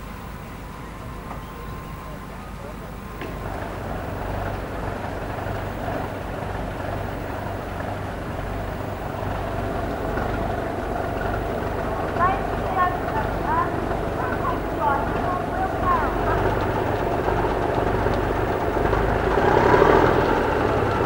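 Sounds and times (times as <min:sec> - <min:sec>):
low engine rumble: 0:00.0 - 0:21.0
outdoor background noise: 0:00.0 - 0:21.0.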